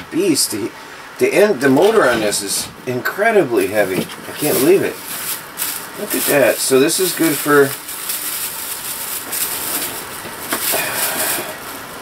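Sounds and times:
packaging rustling and knocking: 3.8s - 11.8s.

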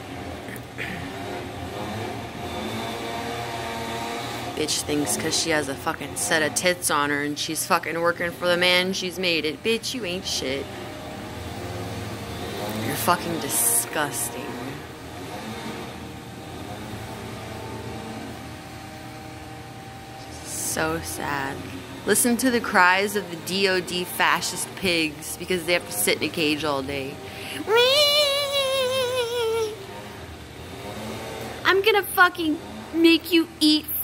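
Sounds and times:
car engine humming: 7.9s - 32.6s
faint high whine: 19.8s - 22.5s.

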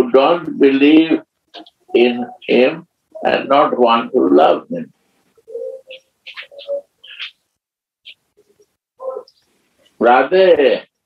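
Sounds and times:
bird calling: 5.4s - 9.5s.

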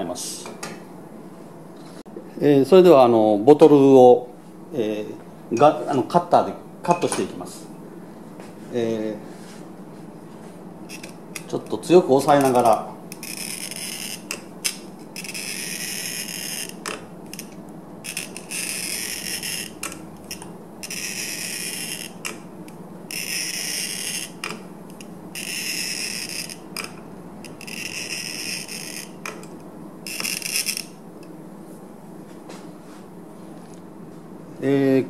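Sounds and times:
glass cutter scoring a bottle: 10.9s - 22.4s, 23.1s - 29.5s, 30.1s - 31.0s.

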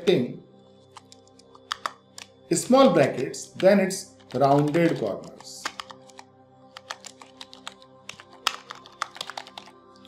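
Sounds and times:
soft background music: 0.0s - 10.0s
keyboard key clicks: 4.2s - 6.2s, 6.8s - 9.7s.

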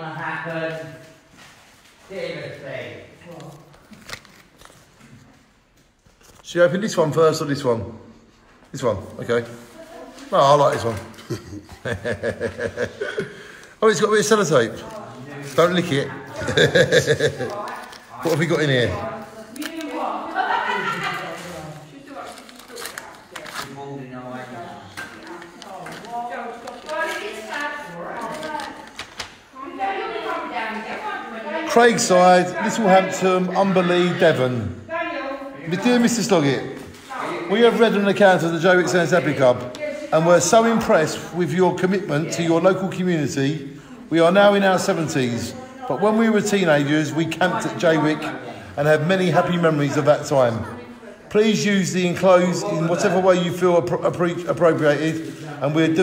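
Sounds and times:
paper envelopes rustling: 3.2s - 6.6s, 8.4s - 30.9s
paper envelope tearing: 3.4s - 4.9s, 21.1s - 24.0s, 25.0s - 29.4s.

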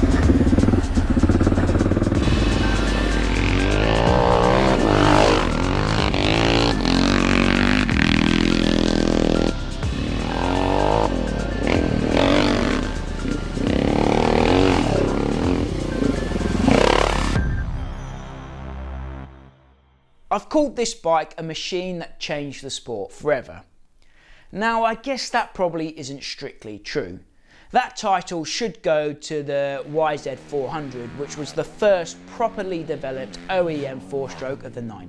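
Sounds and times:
motocross engine revving: 0.0s - 17.4s, 29.8s - 34.7s
background music: 0.0s - 21.5s, 28.9s - 35.0s.

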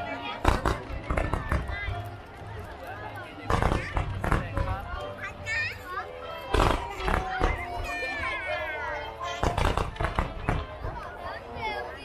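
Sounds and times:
children calling out: 5.4s - 9.8s.

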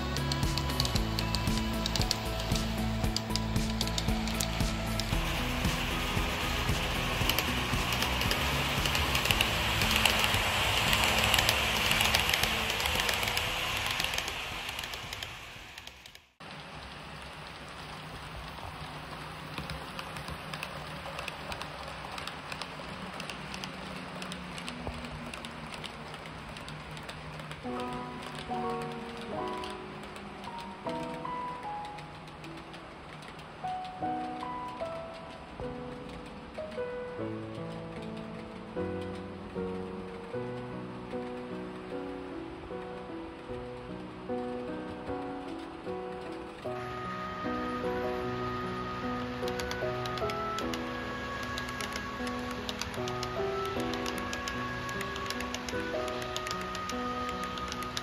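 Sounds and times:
background music: 0.0s - 14.9s, 23.2s - 58.0s
model train wheels rolling: 0.0s - 58.0s.

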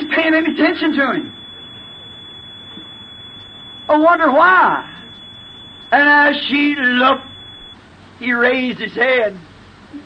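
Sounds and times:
man talking: 0.0s - 1.4s, 5.9s - 7.3s
high-pitched whine: 0.0s - 7.8s
background hiss: 0.0s - 10.0s.

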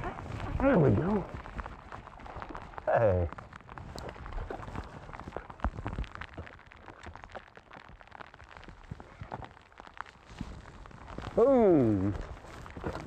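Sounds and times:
rain hiss: 0.0s - 13.0s.

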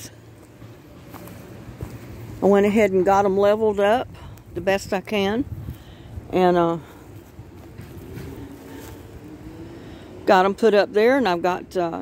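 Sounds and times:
distant engine hum: 0.0s - 12.0s
outdoor background noise: 0.0s - 12.0s.

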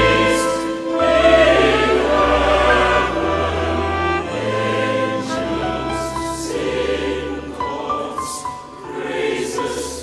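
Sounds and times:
large choir singing held chords: 0.0s - 10.0s.

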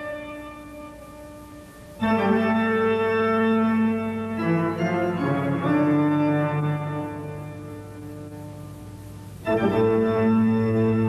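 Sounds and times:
sustained musical chord: 0.0s - 11.0s.

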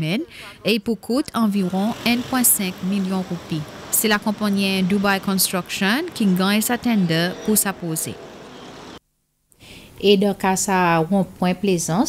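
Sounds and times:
faint background noise: 0.0s - 12.0s
car passing: 1.5s - 9.0s.

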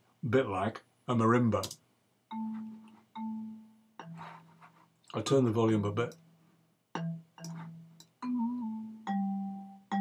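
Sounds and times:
low marimba notes: 2.3s - 4.4s, 6.9s - 10.0s.

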